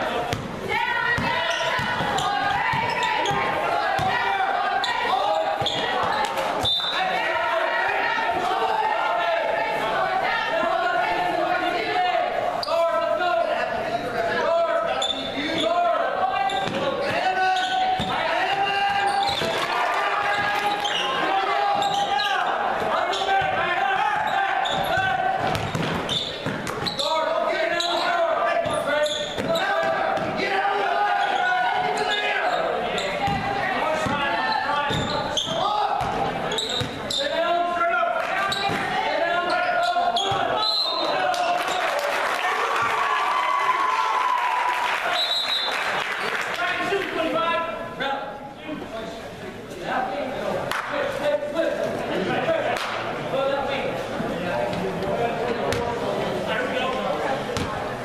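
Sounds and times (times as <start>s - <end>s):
spectators calling and shouting: 0.0s - 48.5s
basketball bouncing on wooden floor: 18.0s - 18.2s, 24.2s - 26.9s.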